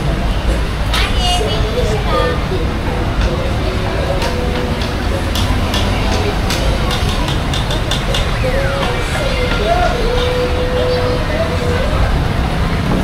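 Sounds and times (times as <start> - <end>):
people talking in background: 0.0 - 13.0
traffic rumble: 0.0 - 13.0.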